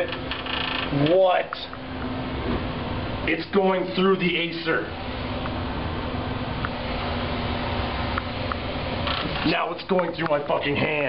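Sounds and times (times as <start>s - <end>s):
constant low hum: 0.0s - 11.0s
cooling fan whirring: 0.0s - 11.0s.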